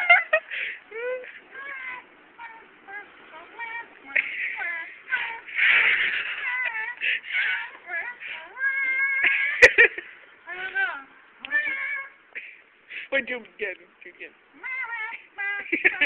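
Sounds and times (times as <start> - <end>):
high-pitched voices squealing and laughing: 1.0 - 9.7.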